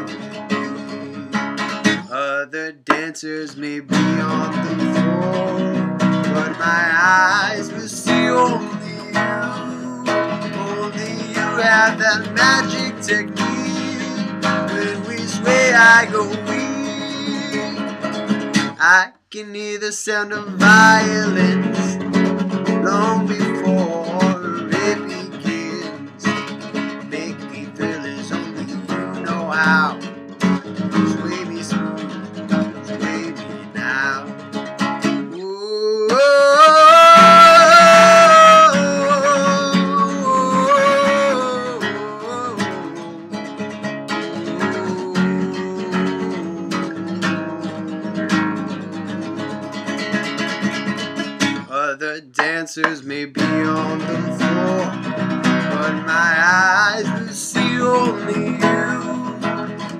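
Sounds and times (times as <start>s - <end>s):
man singing wordlessly: 0.0s - 34.4s, 35.2s - 50.4s, 51.6s - 59.9s
acoustic guitar strumming: 0.0s - 59.9s.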